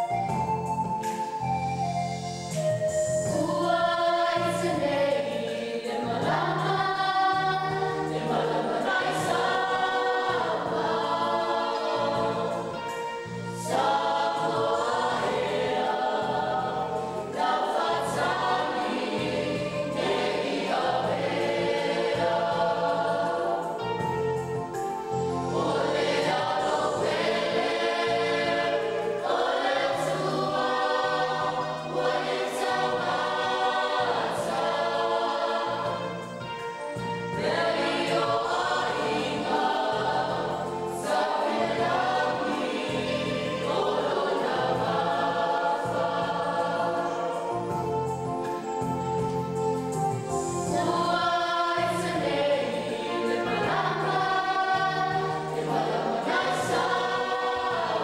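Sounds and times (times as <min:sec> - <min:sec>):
choir singing a church song: 0:00.0 - 0:58.0.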